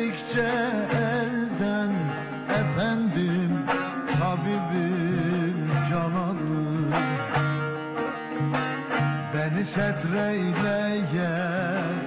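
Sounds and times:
plucked long-necked lute folk music: 0.0 - 12.0.

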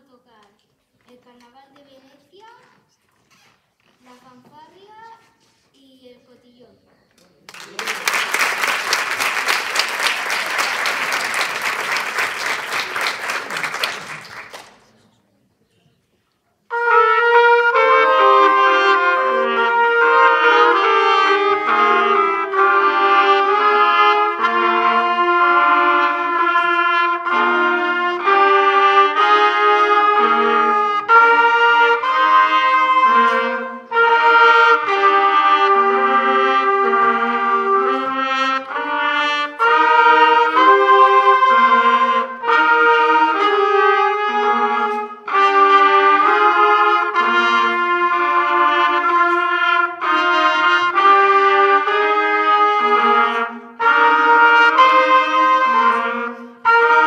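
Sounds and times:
audience applause: 7.5 - 15.0
trumpet ensemble playing: 7.7 - 14.6, 16.7 - 57.0.

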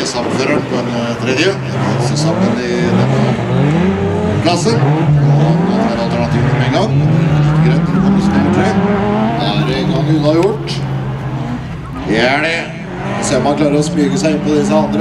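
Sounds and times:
racing car engines revving: 0.0 - 15.0.

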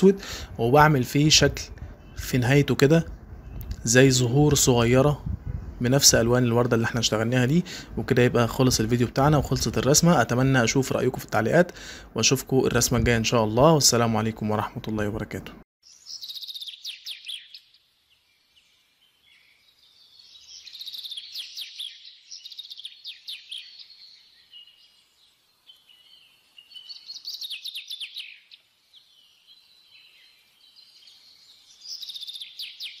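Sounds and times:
small birds chirping and trilling: 0.0 - 33.0.

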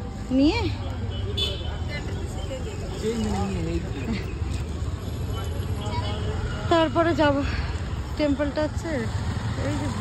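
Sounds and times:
low rumble of road traffic: 0.0 - 10.0.

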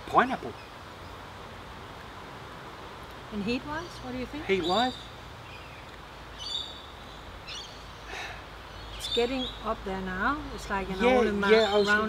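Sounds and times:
low background noise: 0.0 - 12.0
soft rush of noise: 0.0 - 12.0
high bird calls: 3.4 - 9.8, 10.6 - 12.0.

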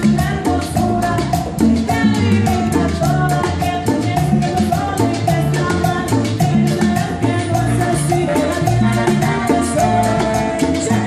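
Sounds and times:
live band music: 0.0 - 11.0
woman singing into a microphone: 0.0 - 11.0.

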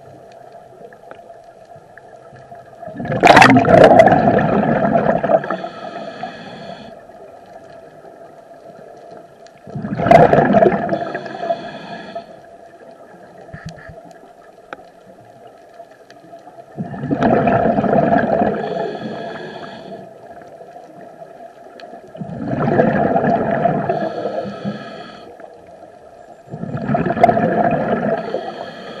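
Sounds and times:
faint clicks: 0.0 - 2.8, 7.2 - 9.7, 12.4 - 16.8, 19.0 - 22.2
diver exhaling bubbles: 2.8 - 6.9, 9.6 - 12.2, 16.7 - 20.0, 22.2 - 25.2, 26.5 - 29.0.

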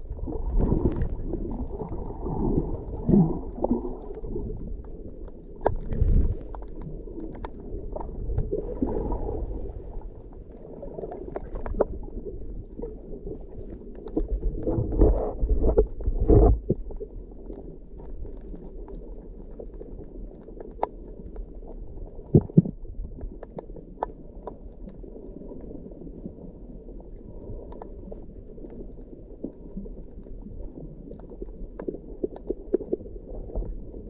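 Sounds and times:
underwater rumbling and sloshing: 0.0 - 34.0.

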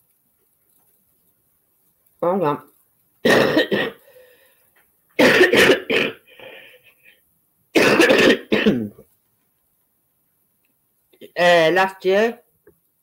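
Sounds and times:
person coughing: 3.2 - 4.0, 5.2 - 6.3, 7.8 - 9.0.

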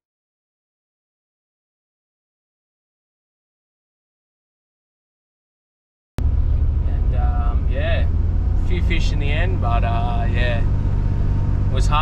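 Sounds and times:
car engine and road noise: 6.2 - 12.0
man talking: 6.9 - 10.7, 11.7 - 12.0.

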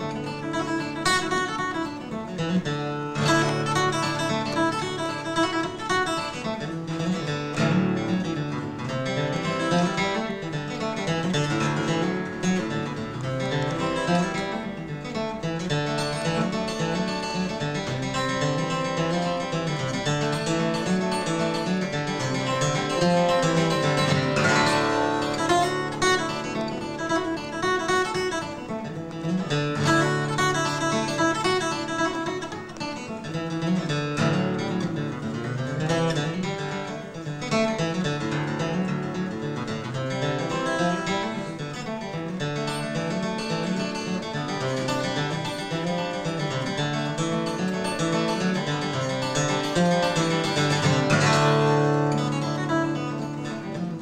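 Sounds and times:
acoustic guitar fast melody: 0.0 - 54.0.

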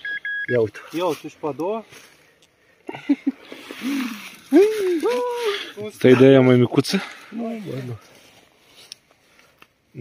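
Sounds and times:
man talking and exclaiming: 3.8 - 8.0.

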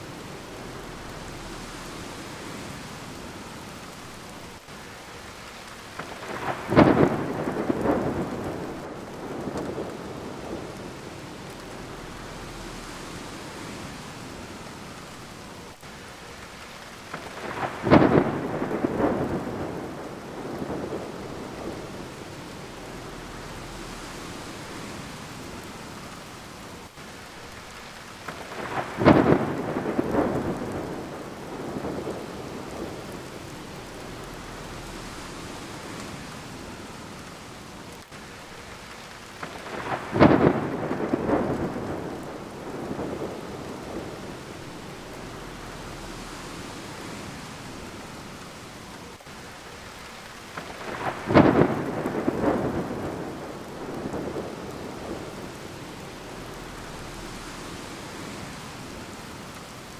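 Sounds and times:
steady rain: 0.0 - 59.9
thunder cracking and rumbling: 5.9 - 15.0, 17.1 - 26.1, 28.2 - 37.4, 39.3 - 48.5, 50.4 - 59.2.

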